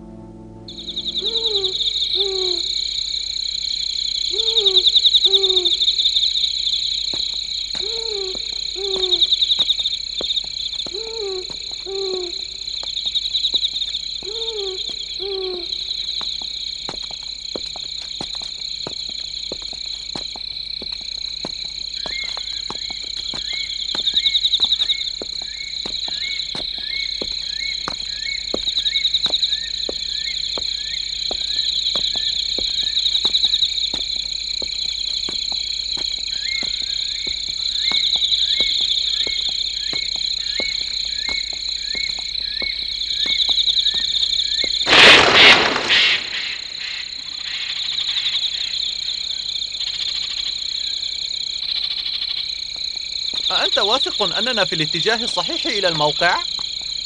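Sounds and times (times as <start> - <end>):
high insect drone: 0.0 - 57.0
loud burst of noise: 44.9 - 46.8.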